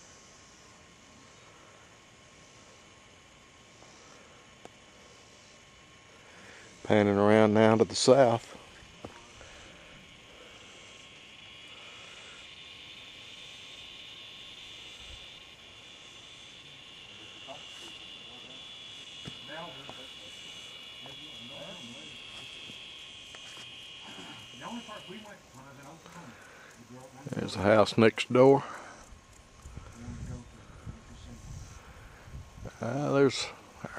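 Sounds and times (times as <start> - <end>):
insects droning: 0.0 - 33.9.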